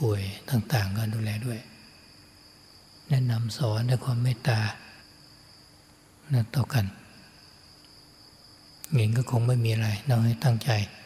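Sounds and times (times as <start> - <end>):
man talking: 0.0 - 1.7, 6.3 - 7.0, 8.9 - 11.0
high-pitched insect trill: 0.0 - 11.0
low hiss: 0.0 - 11.0.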